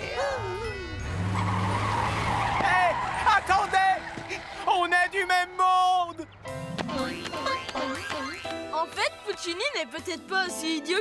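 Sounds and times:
tyre screech: 0:01.0 - 0:05.5.

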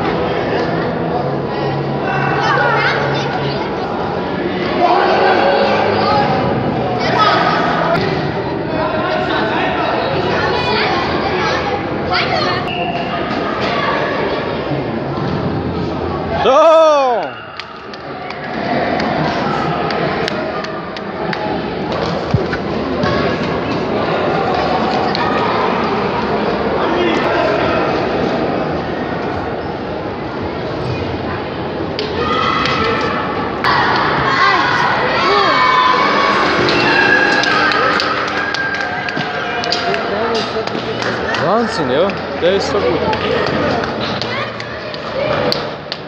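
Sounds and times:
spectators' voices and shouts: 0:00.0 - 0:46.0
people shouting and calling: 0:16.3 - 0:17.8, 0:32.0 - 0:41.8.

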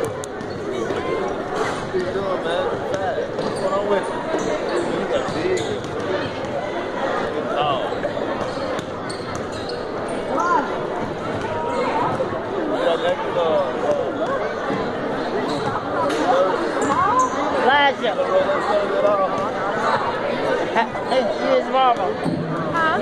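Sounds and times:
babble of voices: 0:00.0 - 0:23.0.

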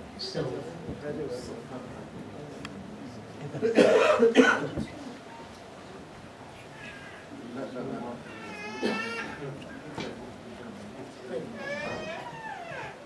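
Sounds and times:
congregation shuffling and murmuring: 0:00.0 - 0:13.0.

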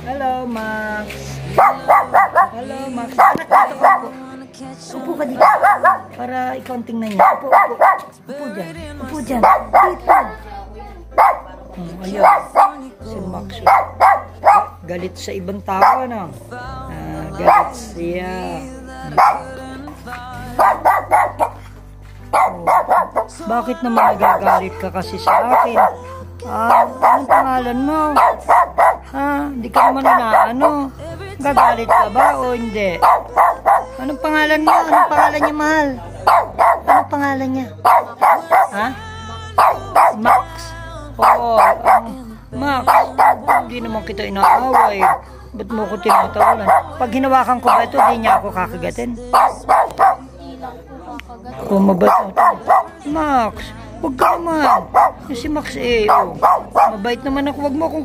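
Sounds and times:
dog barking sharply: 0:01.5 - 0:04.2, 0:05.3 - 0:06.2, 0:07.1 - 0:08.2, 0:09.4 - 0:10.4, 0:11.1 - 0:12.9, 0:13.6 - 0:14.8, 0:15.8 - 0:16.1, 0:17.4 - 0:17.9, 0:19.0 - 0:19.6, 0:20.5 - 0:26.1, 0:26.7 - 0:29.2, 0:29.8 - 0:30.8, 0:31.5 - 0:37.2, 0:37.8 - 0:38.8, 0:39.6 - 0:40.6, 0:41.2 - 0:42.2, 0:42.9 - 0:43.8, 0:44.4 - 0:45.3, 0:46.1 - 0:48.5, 0:49.3 - 0:50.2, 0:52.0 - 0:53.0, 0:54.2 - 0:55.3, 0:56.0 - 0:57.0.

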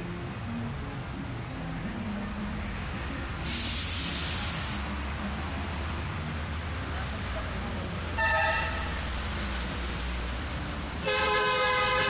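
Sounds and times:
low street rumble: 0:00.0 - 0:12.0
loud hissing burst: 0:03.4 - 0:04.9.

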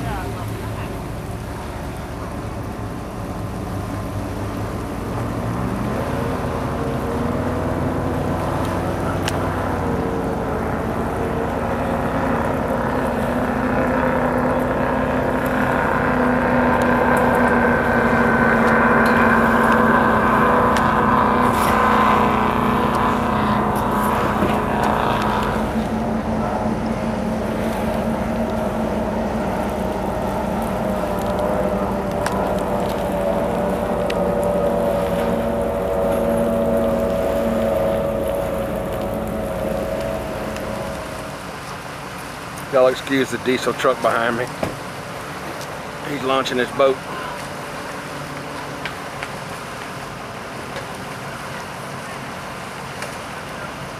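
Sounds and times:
powerboat engines at high speed: 0:00.0 - 0:53.9.

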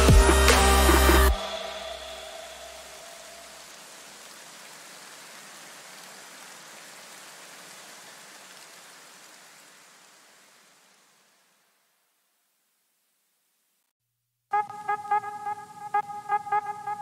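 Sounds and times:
soft electronic hiss: 0:00.2 - 0:13.9.

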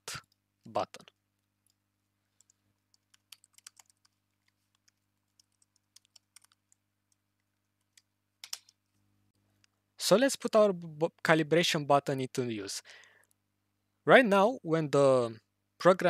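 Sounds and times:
keyboard keystrokes clicking: 0:02.4 - 0:04.2, 0:07.8 - 0:08.7.

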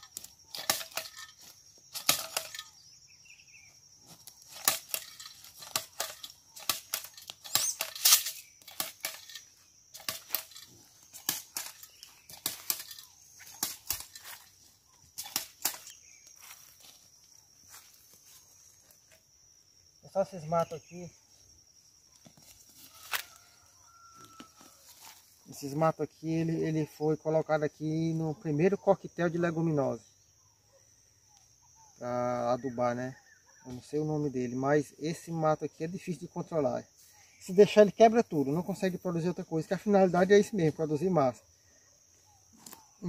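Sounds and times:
dry leaves crunching underfoot: 0:10.0 - 0:19.1, 0:22.3 - 0:25.4.

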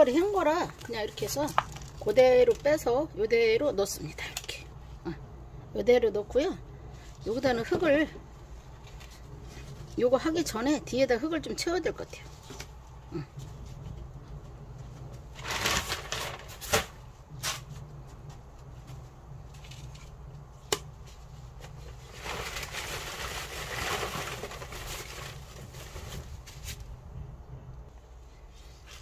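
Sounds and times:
soil rustling as poured: 0:22.0 - 0:26.0.

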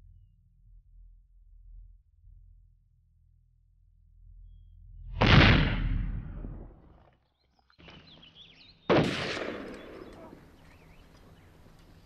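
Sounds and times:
explosions: 0:05.2 - 0:06.9, 0:08.9 - 0:10.2.

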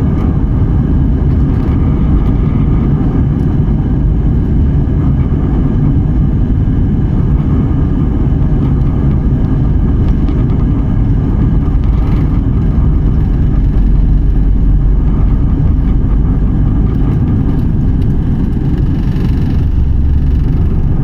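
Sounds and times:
faint whining tones: 0:00.0 - 0:21.0
jet engines and wheels rumbling: 0:00.0 - 0:21.0.

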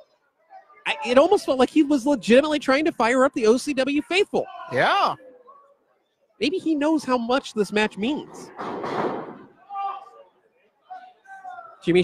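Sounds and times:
heavy thud in wrestling ring: 0:08.5 - 0:09.5
crowd shouting: 0:09.3 - 0:11.8.

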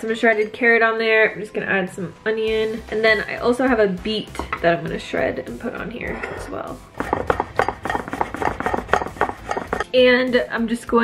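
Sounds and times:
grater rasping: 0:06.3 - 0:09.9.

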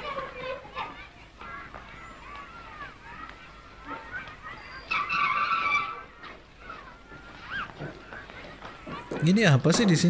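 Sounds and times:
bicycle brakes squealing: 0:01.5 - 0:09.2.

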